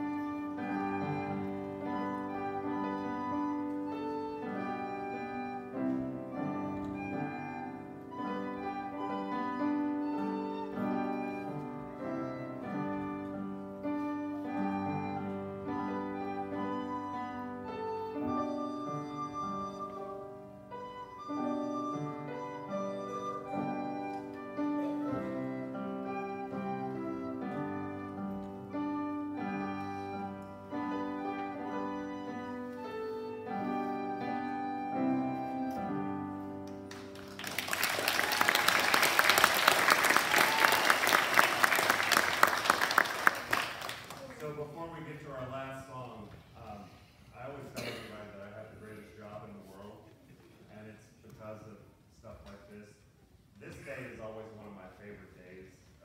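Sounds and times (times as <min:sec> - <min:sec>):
child playing a recorder: 0:00.0 - 0:36.6
upright piano: 0:00.0 - 0:44.1.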